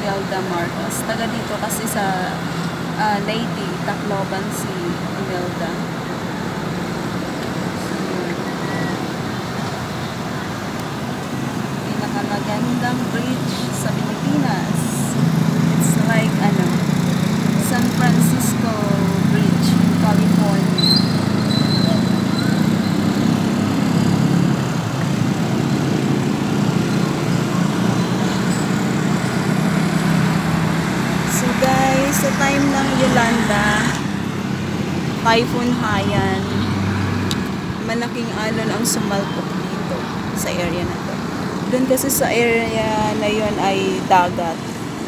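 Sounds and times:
road traffic hum: 0.0s - 45.0s.

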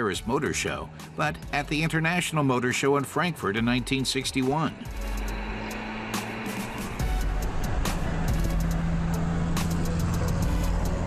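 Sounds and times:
background music: 0.0s - 11.0s
car engine running: 3.7s - 11.0s.

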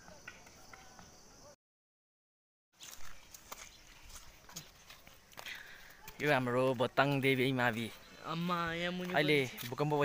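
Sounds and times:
faint outdoor background: 0.0s - 1.6s, 2.7s - 10.0s.

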